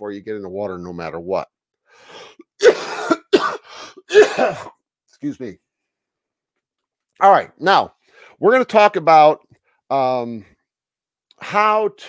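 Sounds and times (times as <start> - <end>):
short breath in: 1.8 - 2.4, 8.0 - 8.4
man coughing: 2.5 - 4.8.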